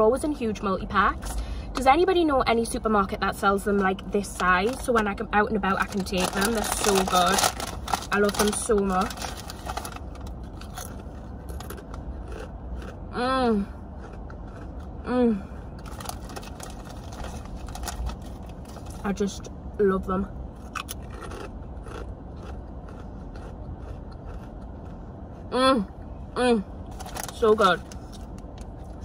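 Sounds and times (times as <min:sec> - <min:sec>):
steady low hum: 0:00.0 - 0:29.0
steady low rumble: 0:00.0 - 0:29.0
chewing crisps crunches: 0:04.2 - 0:13.0, 0:13.9 - 0:15.0, 0:15.6 - 0:19.0, 0:20.6 - 0:25.0, 0:26.9 - 0:29.0.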